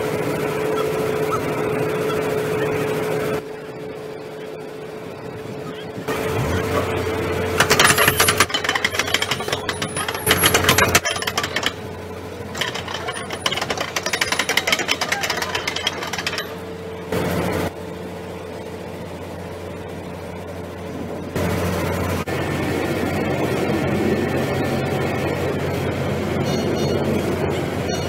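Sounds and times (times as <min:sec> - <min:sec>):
steady engine hum: 0:00.0 - 0:28.0
metallic rattling and clatter: 0:07.5 - 0:16.7.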